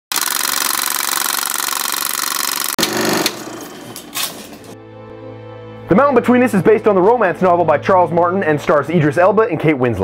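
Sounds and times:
rapid mechanical rattle: 0.1 - 4.8.

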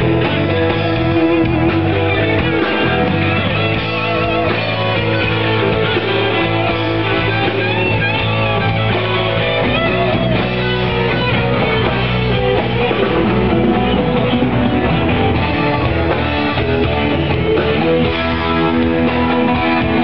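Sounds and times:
electric guitar: 0.0 - 20.0
live rock band playing: 0.0 - 20.0.

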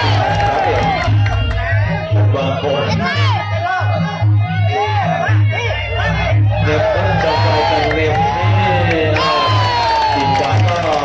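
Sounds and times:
crowd shouting and cheering: 0.0 - 11.0
ring music drumbeat: 0.0 - 11.0.

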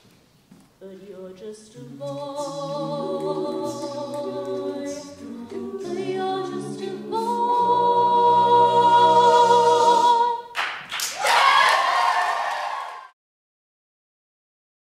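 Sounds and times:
a cappella choir singing: 1.4 - 10.5
audience applause: 10.6 - 13.2.

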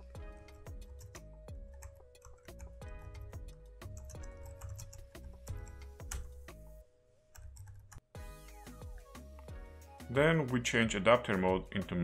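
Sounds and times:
faint background music: 0.0 - 12.0
computer keyboard typing: 0.8 - 6.3, 7.4 - 8.0.

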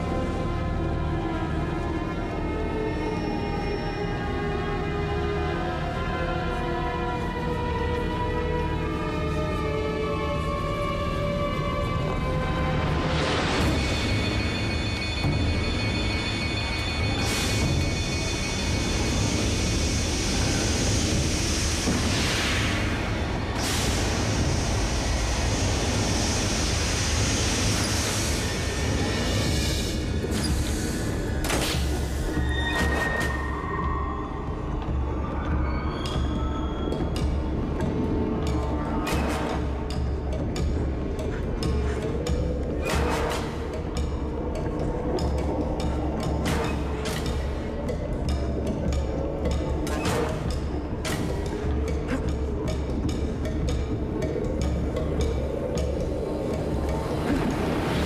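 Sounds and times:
tense ominous music: 0.0 - 58.0.

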